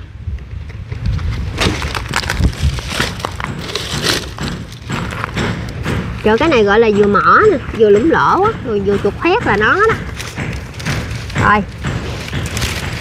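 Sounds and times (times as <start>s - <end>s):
dry palm fronds rustling: 1.2s - 5.5s, 10.0s - 13.0s
brittle leaves snapping: 1.5s - 5.4s, 10.1s - 13.0s.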